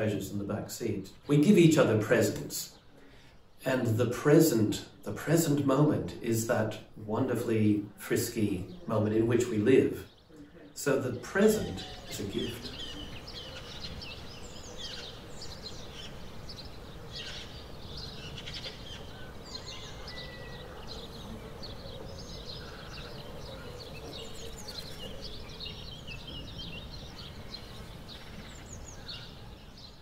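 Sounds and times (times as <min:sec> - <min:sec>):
birds chirping and singing: 0:00.0 - 0:30.0.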